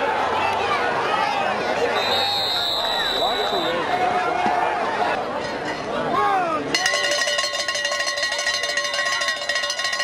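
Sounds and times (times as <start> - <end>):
cowbell shaken rapidly: 6.7 - 10.0.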